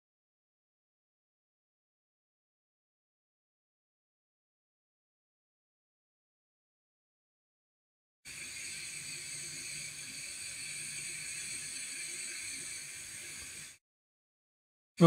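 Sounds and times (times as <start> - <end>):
hot air nozzle hissing: 8.3 - 13.8.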